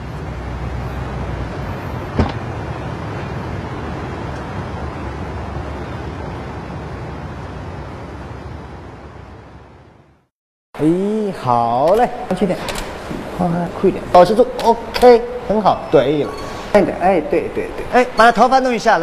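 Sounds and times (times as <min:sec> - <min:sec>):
street traffic noise: 0:00.0 - 0:19.0.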